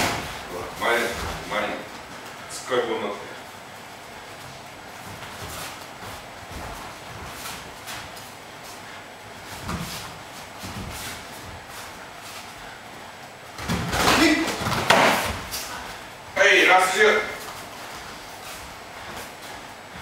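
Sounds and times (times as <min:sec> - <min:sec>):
footwork thuds: 0:00.0 - 0:02.4, 0:03.8 - 0:16.4.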